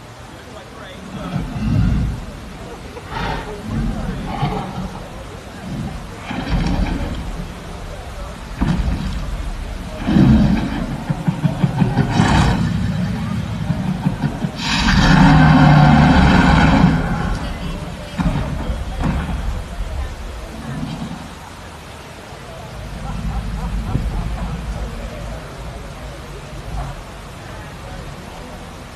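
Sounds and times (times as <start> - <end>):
dinosaur growls and roars: 0.9 - 21.7, 22.5 - 28.5.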